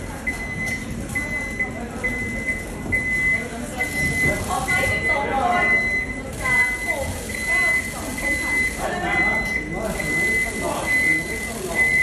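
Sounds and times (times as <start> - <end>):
crowd chatter: 0.0 - 12.0
electronic warning beeps: 0.0 - 12.0.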